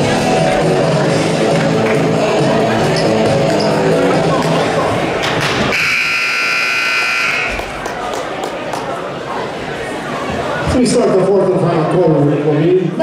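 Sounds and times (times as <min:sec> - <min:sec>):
music: 0:00.0 - 0:05.0
scoreboard horn buzz: 0:05.7 - 0:07.7.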